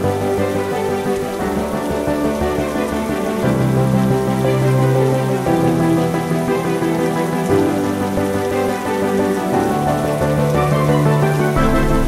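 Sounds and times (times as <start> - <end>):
soft background music: 0.0 - 12.0
steady rain: 0.0 - 12.0.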